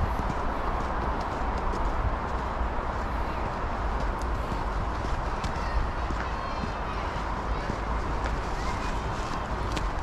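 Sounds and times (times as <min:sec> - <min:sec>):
footsteps crunching on snow: 0:00.0 - 0:10.0
steady low rumble: 0:00.0 - 0:10.0.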